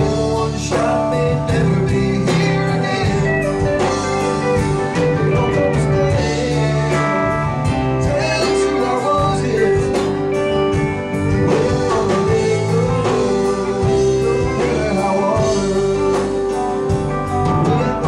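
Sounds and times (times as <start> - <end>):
bass: 0.0 - 18.0
electric guitar: 0.0 - 18.0
held keyboard chords: 0.0 - 18.0.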